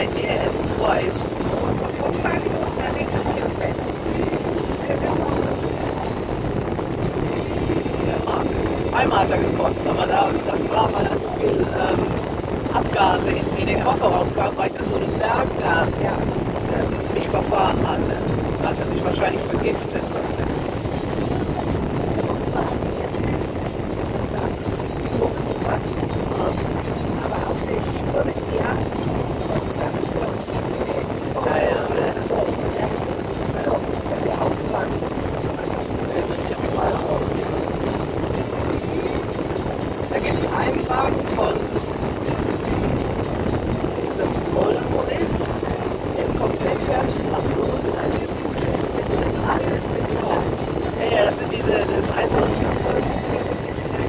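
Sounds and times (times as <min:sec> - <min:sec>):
indistinct voices: 0:00.0 - 0:54.0
music: 0:00.0 - 0:54.0
road and engine noise: 0:00.0 - 0:54.0.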